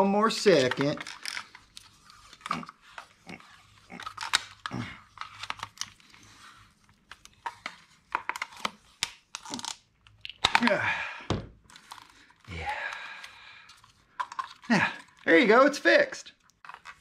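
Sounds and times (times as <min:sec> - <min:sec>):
plastic clicks and rattles: 0:00.6 - 0:02.6, 0:13.2 - 0:15.3.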